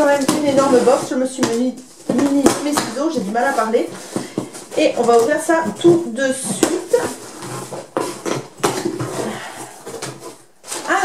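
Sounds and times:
cardboard flaps rustling: 0.0 - 11.0.

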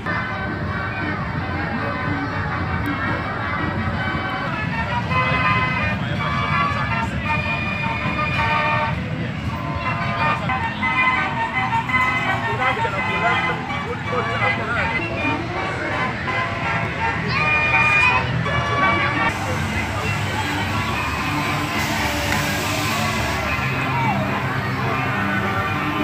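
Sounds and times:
chatter of voices: 0.0 - 26.0
fairground organ music: 0.0 - 26.0.

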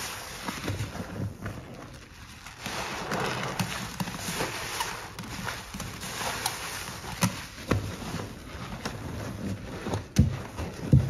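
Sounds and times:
sponge foam squelching: 0.0 - 11.0.

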